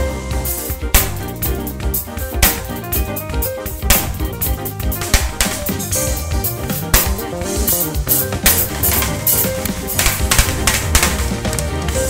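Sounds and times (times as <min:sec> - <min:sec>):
drum and cymbal hits: 0:00.0 - 0:12.0
low bass notes: 0:00.0 - 0:12.0.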